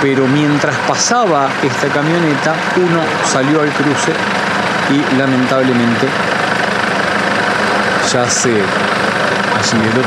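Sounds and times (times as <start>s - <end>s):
van engine idling: 0.0s - 10.0s.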